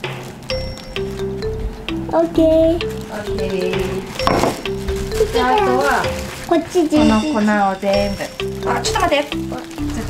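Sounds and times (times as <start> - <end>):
background music: 0.0 - 10.0
plastic bag crinkling: 2.8 - 10.0.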